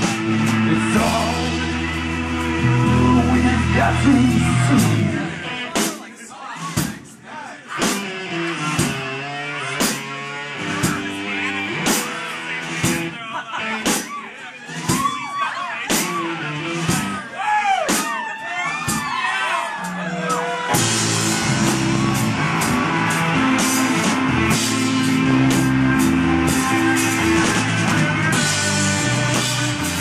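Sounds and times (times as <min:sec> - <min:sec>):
guitars bending notes: 0:00.0 - 0:05.7, 0:07.8 - 0:14.1, 0:19.7 - 0:30.0
live rock band playing: 0:00.0 - 0:30.0.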